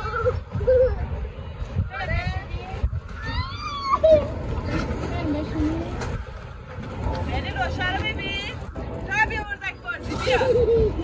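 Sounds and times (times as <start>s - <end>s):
steady low rumble: 0.0s - 11.0s
people talking: 0.1s - 6.2s, 7.1s - 11.0s.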